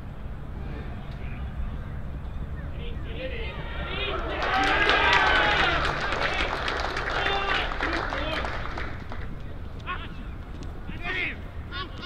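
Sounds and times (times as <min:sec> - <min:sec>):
voices shouting and cheering: 0:02.5 - 0:12.0.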